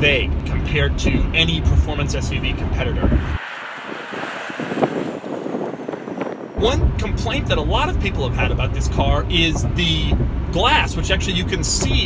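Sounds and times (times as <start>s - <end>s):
in-cabin road rumble: 0.0s - 12.0s
wind on microphone: 1.0s - 8.2s
tyres hissing on road: 3.0s - 6.3s.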